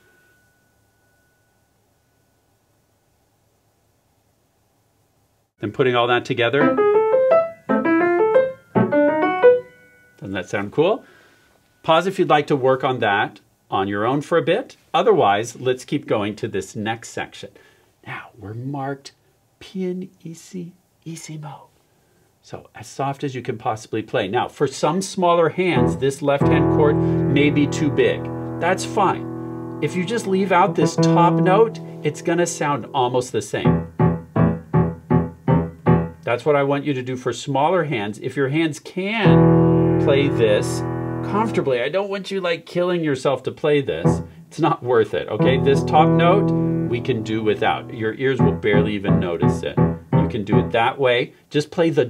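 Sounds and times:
piano chords and runs: 6.6 - 10.0, 25.8 - 33.0, 33.6 - 36.3, 39.2 - 41.7, 45.4 - 50.8.

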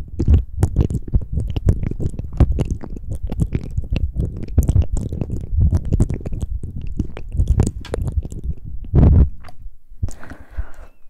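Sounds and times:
wet lip and mouth clicks: 0.0 - 11.0.

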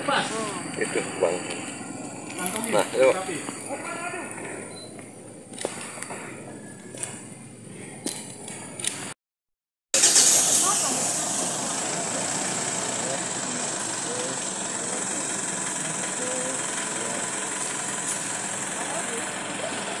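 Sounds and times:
steady outdoor hiss: 0.0 - 9.2, 10.0 - 20.0.

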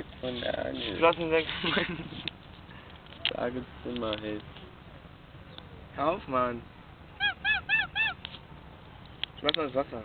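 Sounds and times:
goose honking: 7.2 - 8.2.

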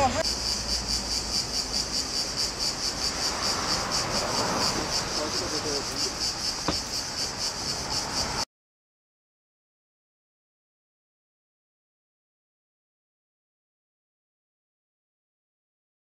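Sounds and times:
cicadas buzzing: 0.0 - 8.5.

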